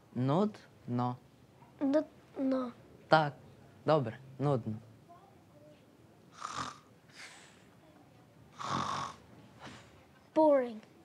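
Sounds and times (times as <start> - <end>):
faint breath: 7.1 - 7.8.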